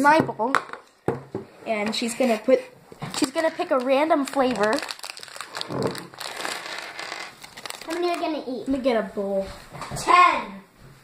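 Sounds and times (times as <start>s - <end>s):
candy packaging crinkling: 2.2s - 8.7s.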